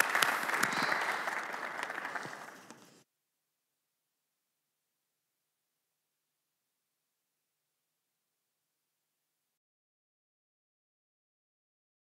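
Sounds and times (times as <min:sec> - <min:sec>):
audience applauding: 0:00.0 - 0:03.0.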